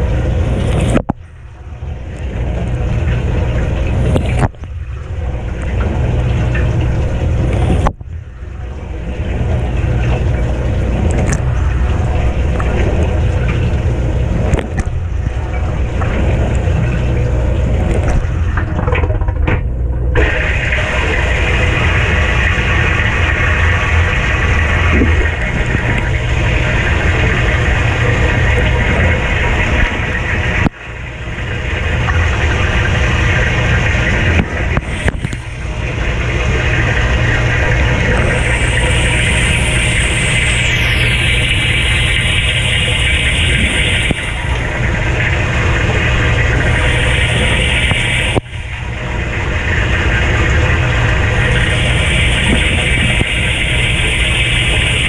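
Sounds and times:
dishwasher pump running: 0.0 - 55.0
water spraying inside dishwasher: 0.0 - 55.0.

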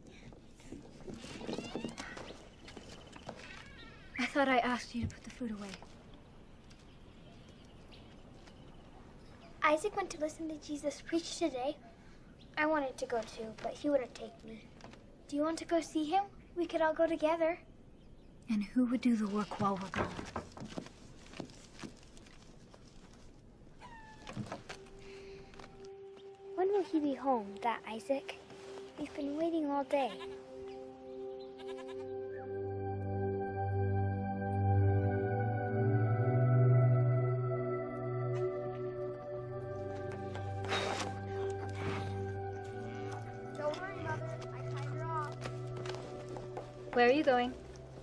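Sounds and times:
animal crying: 3.4 - 4.3, 23.8 - 24.4, 31.4 - 32.5
steady low tone: 24.8 - 48.0
high animal cry: 31.5 - 32.2.

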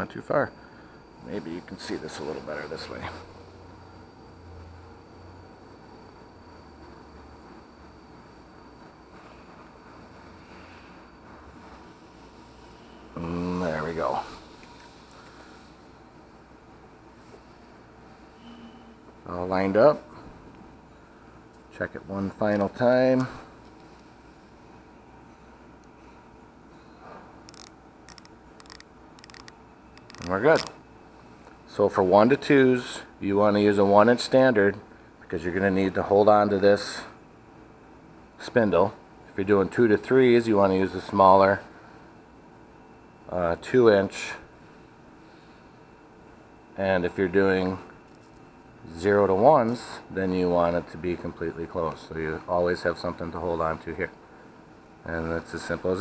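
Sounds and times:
micrometer ratchet clicking: 27.5 - 30.7.

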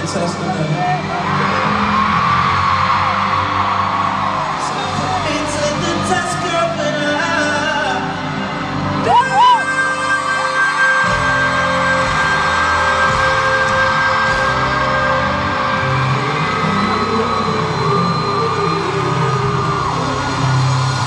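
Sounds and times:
slow r and b music: 0.0 - 21.0
audience yelling and whooping: 0.3 - 21.0.

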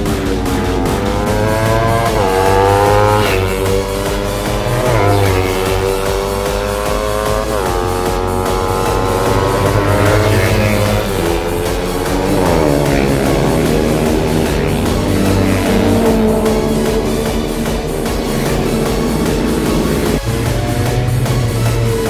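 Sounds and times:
motorcycle engines revving: 0.0 - 22.0
rock music: 0.0 - 22.0.

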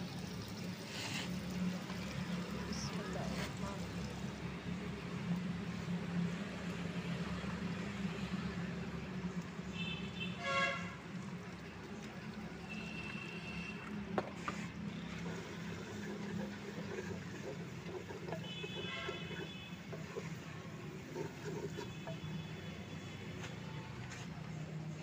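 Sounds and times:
vehicle horn toots: 9.8 - 11.0, 18.3 - 20.0.

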